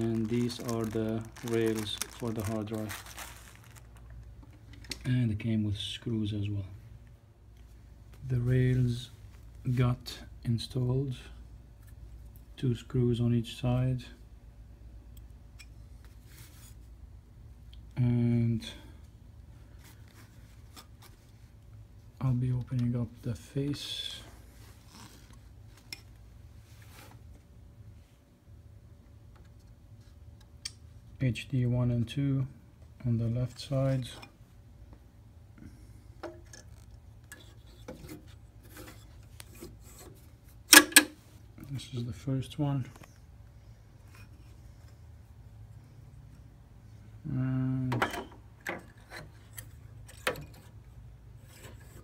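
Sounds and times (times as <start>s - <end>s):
low steady hum: 0.0s - 52.0s
person saying uh: 47.2s - 48.0s.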